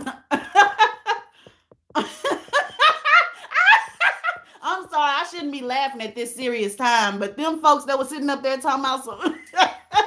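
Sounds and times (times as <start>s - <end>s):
woman laughing: 0.0s - 4.6s, 9.1s - 10.0s.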